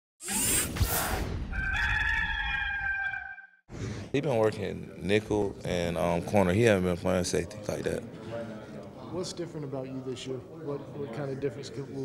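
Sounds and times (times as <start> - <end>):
rooster crowing: 1.5 - 3.6.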